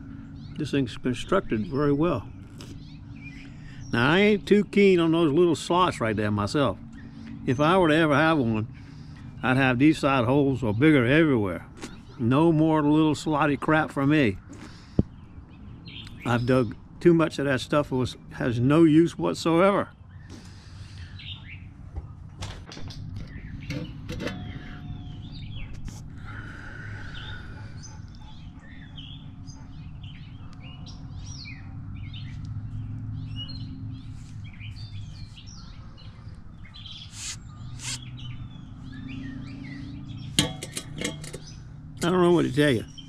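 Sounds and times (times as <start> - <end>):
small birds chirping: 0.0 - 43.0
sharp clicks and knocks: 22.0 - 24.7, 40.4 - 42.2.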